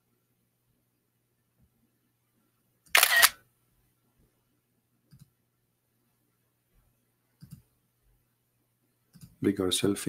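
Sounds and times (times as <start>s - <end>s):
camera shutter sound effect: 2.9s - 3.4s.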